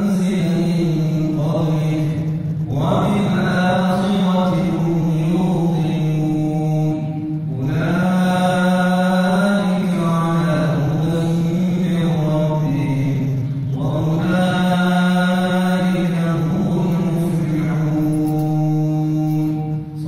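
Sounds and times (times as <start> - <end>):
man chanting into microphone: 0.0 - 20.0.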